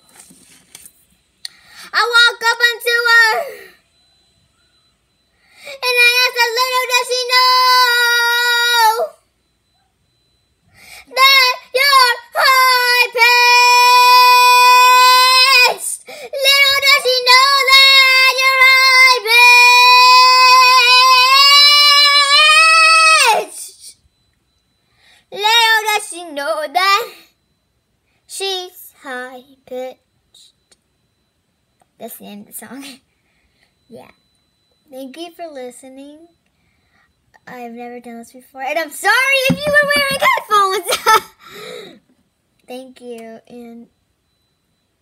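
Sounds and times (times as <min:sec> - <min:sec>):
girl singing unaccompanied: 0:05.8 - 0:09.2, 0:11.0 - 0:24.0, 0:25.3 - 0:27.2.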